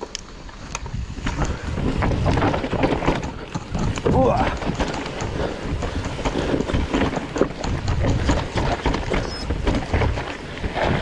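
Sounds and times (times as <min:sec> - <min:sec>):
bike frame rattling: 0:00.0 - 0:11.0
bike tyres crunching on dirt: 0:00.0 - 0:11.0.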